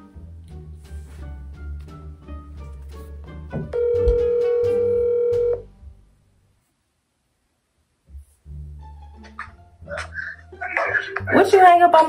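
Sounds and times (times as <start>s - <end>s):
background music: 0.0s - 6.5s, 8.0s - 12.0s
telephone ringing tone: 3.8s - 5.7s.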